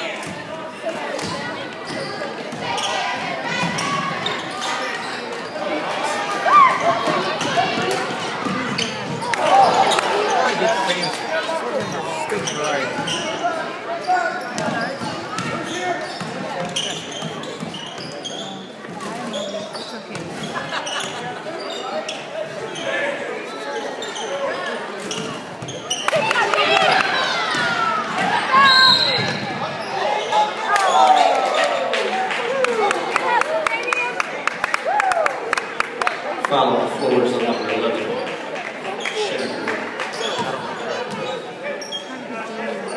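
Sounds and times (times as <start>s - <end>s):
crowd voices echoing: 0.0s - 42.9s
sneakers squeaking on court: 1.2s - 5.8s, 6.8s - 23.0s, 23.8s - 30.5s, 39.0s - 42.9s
referee's whistle: 28.6s - 29.4s.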